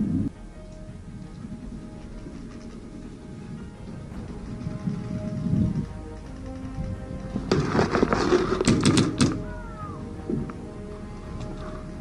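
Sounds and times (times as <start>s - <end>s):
background music: 0.0s - 12.0s
paintball gun firing: 8.6s - 9.4s.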